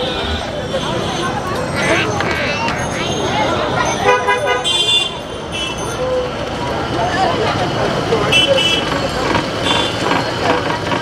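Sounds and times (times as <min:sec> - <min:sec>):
vehicle horns tooting: 0:00.0 - 0:06.1, 0:08.3 - 0:10.2
people's voices: 0:00.0 - 0:10.7
traffic: 0:00.0 - 0:11.0.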